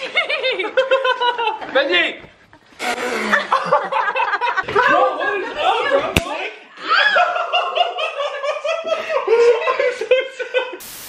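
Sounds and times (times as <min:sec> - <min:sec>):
people laughing hard: 0:00.0 - 0:01.8, 0:02.8 - 0:10.8.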